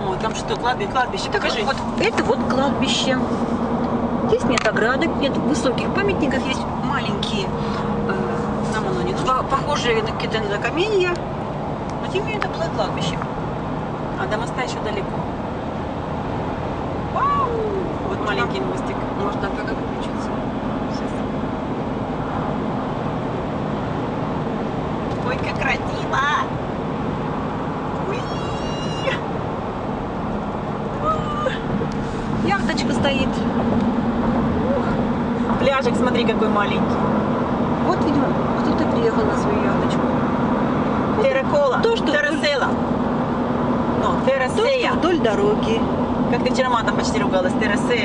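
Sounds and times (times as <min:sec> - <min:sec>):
voices: 0:00.0 - 0:13.3, 0:17.0 - 0:21.3, 0:25.1 - 0:26.6, 0:28.0 - 0:29.4, 0:30.9 - 0:40.4, 0:41.0 - 0:42.9, 0:43.9 - 0:48.0
car road and engine drone: 0:00.0 - 0:48.0.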